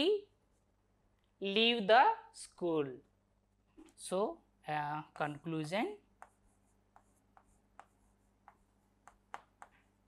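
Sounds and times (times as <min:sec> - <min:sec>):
marker writing on whiteboard: 0:06.1 - 0:10.0.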